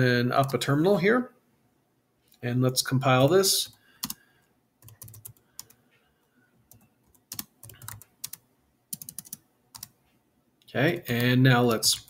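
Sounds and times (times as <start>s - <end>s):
typing on computer keyboard: 4.0s - 4.2s, 4.8s - 5.8s, 6.7s - 10.0s.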